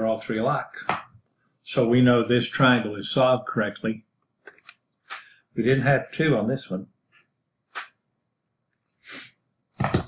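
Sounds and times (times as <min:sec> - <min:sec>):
man speaking: 0:00.0 - 0:01.0, 0:01.7 - 0:04.0, 0:05.1 - 0:06.9
man sniffing: 0:09.0 - 0:09.3.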